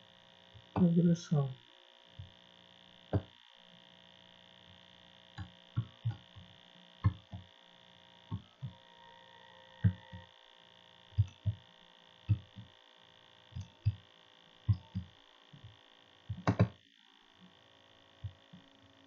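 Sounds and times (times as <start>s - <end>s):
steady electrical hum: 0.0s - 19.0s
keyboard keys tapping: 11.2s - 11.6s, 12.3s - 12.7s, 14.7s - 15.7s, 16.3s - 16.8s.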